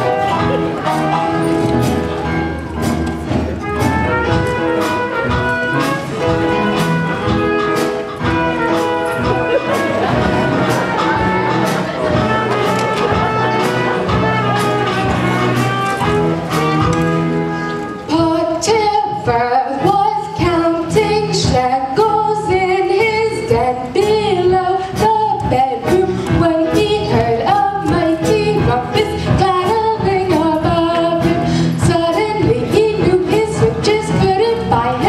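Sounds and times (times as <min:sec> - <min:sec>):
band accompaniment with steady beat: 0:00.0 - 0:35.0.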